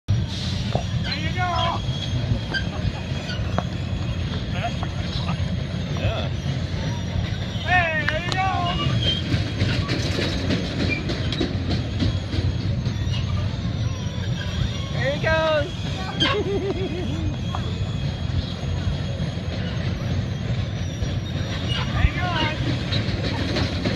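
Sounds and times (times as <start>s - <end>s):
carnival ride rumbling: 0.1s - 23.9s
ride clatter: 0.6s - 23.9s.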